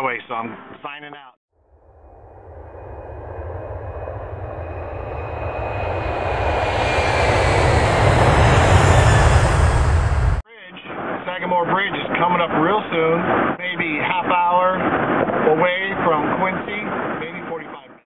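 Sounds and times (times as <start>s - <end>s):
road and wind noise: 1.6s - 10.4s
car engine rumble: 1.8s - 10.4s.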